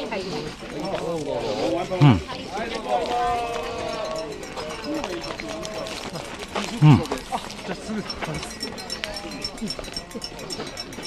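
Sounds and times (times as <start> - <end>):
running footsteps on asphalt: 0.0 - 11.0
person humming held calls: 6.8 - 7.2.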